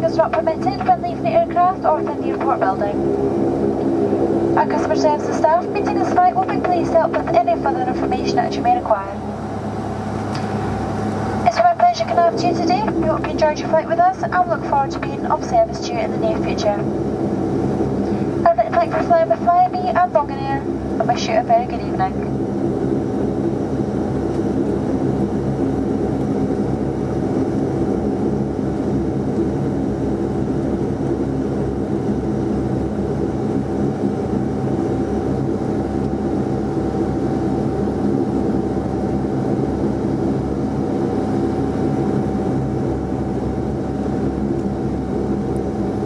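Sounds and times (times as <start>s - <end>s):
constant high whine: 0.0s - 46.0s
turboprop engines droning: 0.0s - 46.0s.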